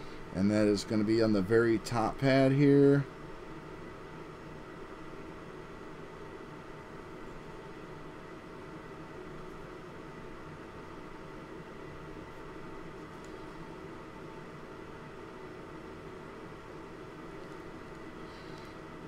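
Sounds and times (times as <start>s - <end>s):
low even hum: 0.0s - 19.0s.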